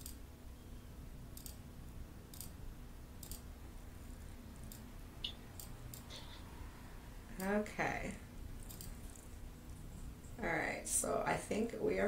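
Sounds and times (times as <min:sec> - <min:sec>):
low room hum: 0:00.0 - 0:12.0
computer mouse clicks: 0:01.4 - 0:01.6, 0:02.3 - 0:02.6, 0:03.2 - 0:03.5, 0:04.6 - 0:06.1, 0:08.6 - 0:09.3.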